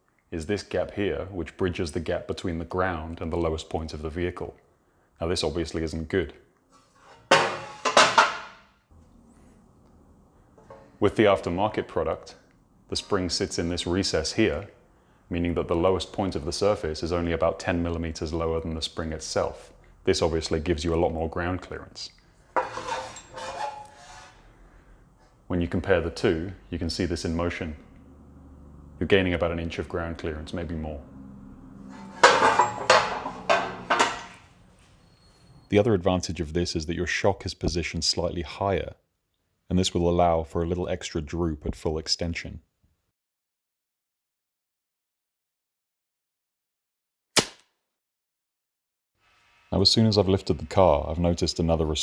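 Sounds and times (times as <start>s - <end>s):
metal plates scraping: 6.7s - 8.6s, 22.5s - 24.5s, 31.8s - 35.6s
squealing metal ring: 22.6s - 24.4s, 31.8s - 33.9s, 34.9s - 35.8s
sharp whack: 47.4s - 47.7s.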